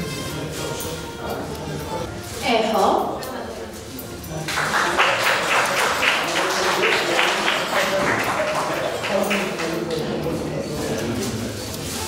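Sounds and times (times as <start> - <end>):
audience applauding: 4.5 - 10.1.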